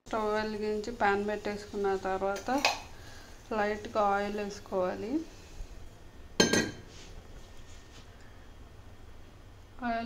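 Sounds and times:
metal kitchenware clink: 0:06.4 - 0:06.8.

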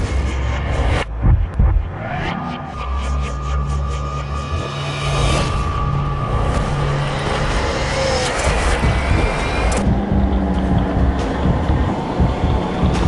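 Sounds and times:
deep hits: 0:00.0 - 0:02.1, 0:08.5 - 0:13.0
dramatic soundtrack music: 0:00.0 - 0:13.0.

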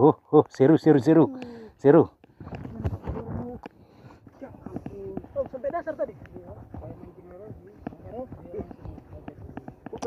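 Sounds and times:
men talking and calling: 0:03.4 - 0:10.0.

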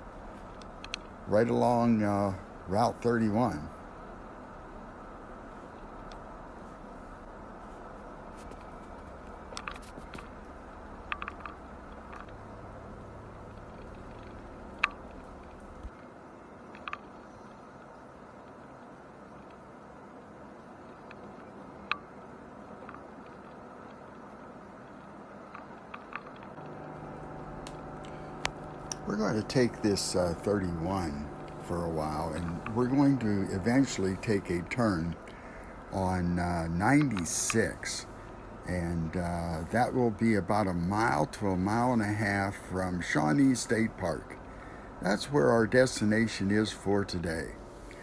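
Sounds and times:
truck cabin road and engine noise: 0:00.0 - 0:16.0, 0:21.3 - 0:48.0
low drone: 0:26.1 - 0:48.0.

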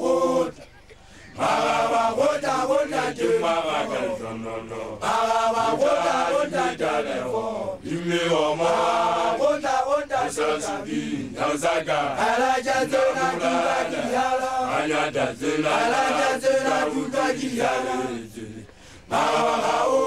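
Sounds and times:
group chanting: 0:00.0 - 0:00.6, 0:01.3 - 0:20.0.

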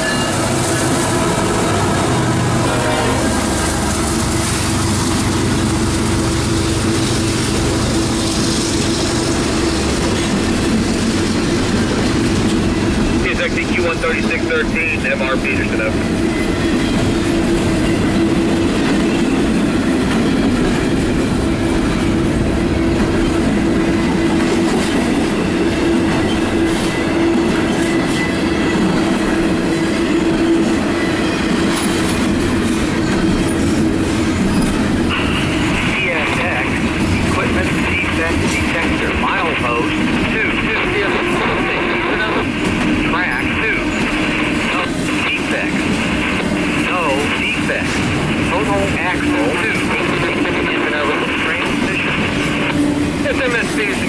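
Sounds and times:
freight train rolling past: 0:00.0 - 0:54.0.

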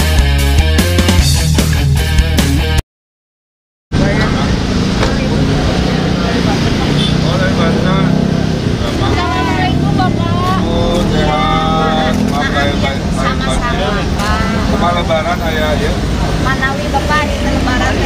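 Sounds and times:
road traffic passing: 0:03.9 - 0:18.0
people talking: 0:04.0 - 0:18.0.

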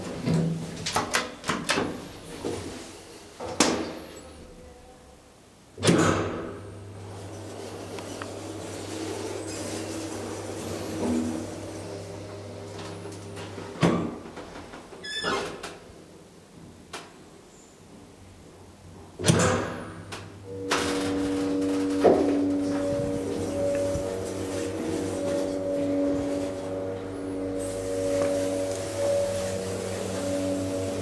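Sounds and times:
elevator pump motor clunking: 0:19.2 - 0:31.0.

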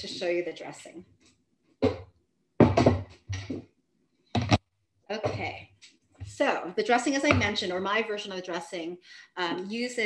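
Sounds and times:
kitchen things knocking on countertop: 0:01.8 - 0:03.6.

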